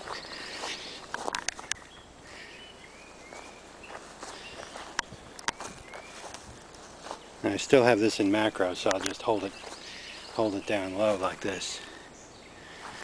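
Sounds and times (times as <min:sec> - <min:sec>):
bird chirps: 0:00.0 - 0:06.4, 0:08.2 - 0:13.0
footsteps through dry grass: 0:00.0 - 0:12.0, 0:12.6 - 0:13.0.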